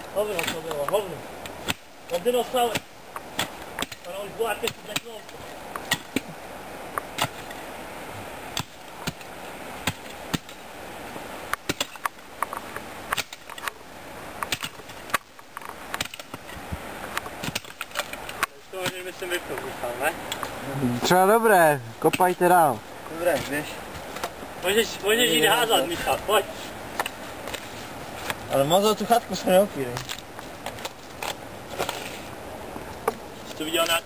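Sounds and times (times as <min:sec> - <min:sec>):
digging tool striking soil: 0:00.3 - 0:01.0, 0:02.6 - 0:06.3, 0:08.6 - 0:10.6, 0:11.6 - 0:12.1, 0:13.1 - 0:13.7, 0:15.9 - 0:16.5, 0:17.4 - 0:19.2.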